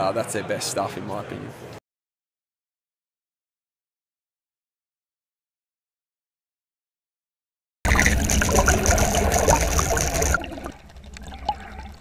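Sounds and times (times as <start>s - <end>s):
water washing: 7.9s - 12.0s.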